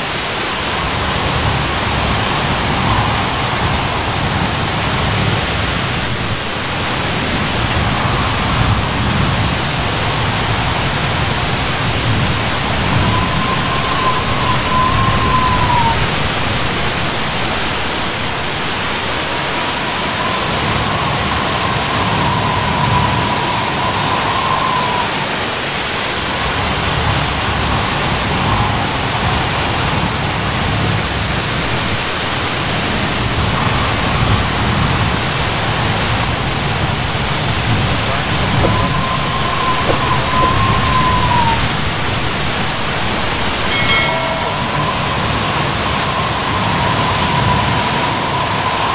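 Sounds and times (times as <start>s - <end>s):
waterfall rushing: 0.0s - 48.9s
faint wavering high tone: 7.6s - 17.0s, 19.2s - 25.4s, 36.6s - 48.9s.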